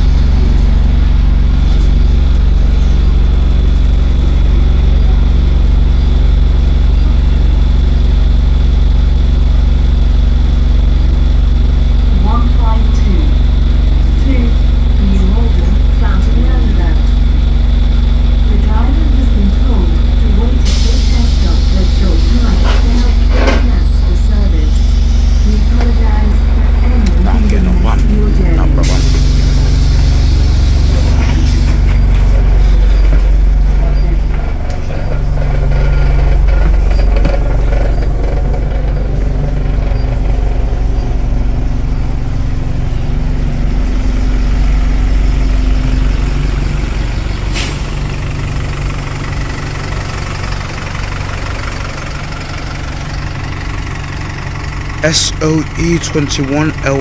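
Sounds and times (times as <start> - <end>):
diesel bus engine idling: 0.0 - 57.0.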